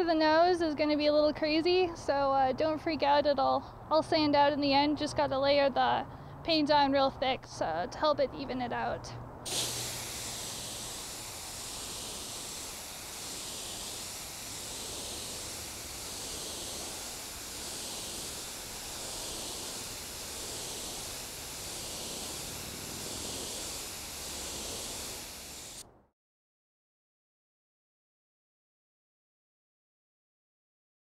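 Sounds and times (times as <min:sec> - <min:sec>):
spray gun hissing: 0:09.5 - 0:25.9.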